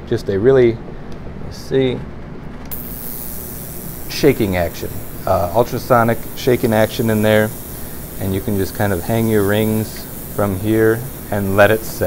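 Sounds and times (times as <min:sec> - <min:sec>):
ultrasonic cleaner high hiss: 0:02.7 - 0:12.0
ultrasonic cleaner switching on: 0:02.7 - 0:12.0.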